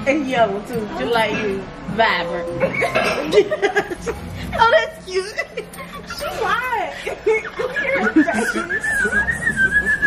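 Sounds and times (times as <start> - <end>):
women laughing: 2.6 - 10.0
high whistle-like tone: 8.7 - 10.0.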